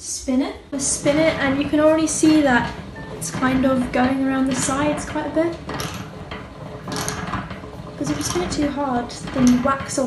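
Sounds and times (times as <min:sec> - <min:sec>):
honey extractor gear drive rattling: 0:00.8 - 0:10.0.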